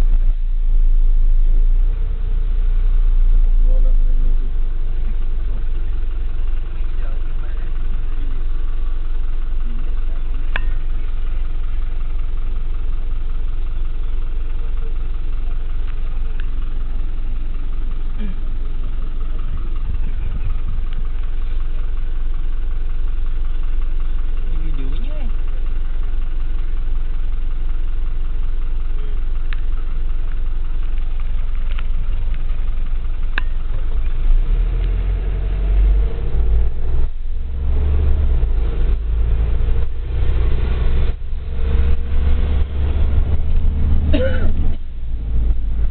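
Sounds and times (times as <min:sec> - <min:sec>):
vehicle engine idling: 0:00.0 - 0:45.9.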